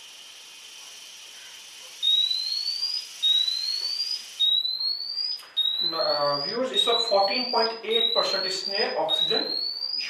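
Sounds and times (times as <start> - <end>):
breath hissing through tube: 0.0 - 2.1
rising electronic alarm sweeps: 2.0 - 10.0.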